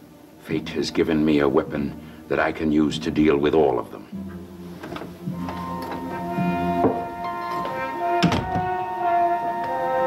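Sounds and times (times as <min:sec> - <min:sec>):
background music with held chords: 0:00.0 - 0:10.0
heavy wooden door shutting: 0:04.8 - 0:08.7.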